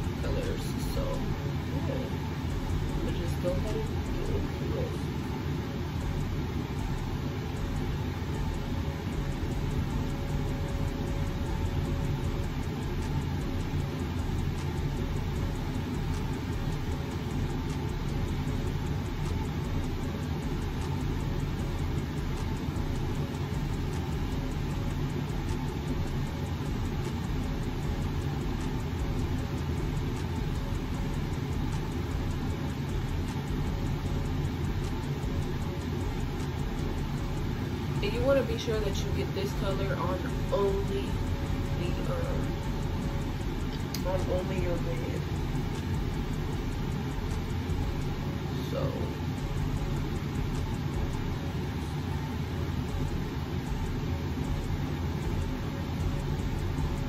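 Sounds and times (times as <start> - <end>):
faint steady hum: 0.0 - 57.0.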